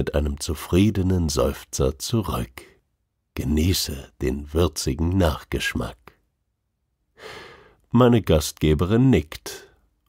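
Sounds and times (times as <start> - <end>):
man speaking: 0.0 - 2.8, 3.4 - 6.2, 7.9 - 9.8
soft breath: 7.2 - 7.8.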